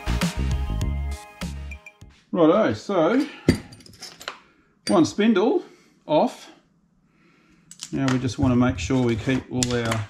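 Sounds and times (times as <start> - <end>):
man speaking: 2.3 - 3.4, 7.9 - 10.0.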